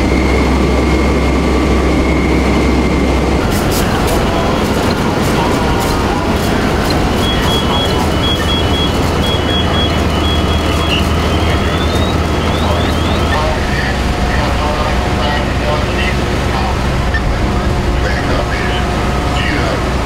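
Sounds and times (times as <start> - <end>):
fire engine humming: 0.0 - 20.0
hose spraying water: 3.4 - 13.5
high beeping: 3.4 - 14.6.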